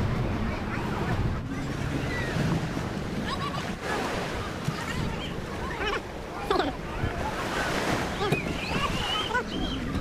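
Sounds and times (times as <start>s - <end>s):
wind rumbling on microphone: 0.0s - 5.9s
small waves washing onto sand: 0.0s - 10.0s.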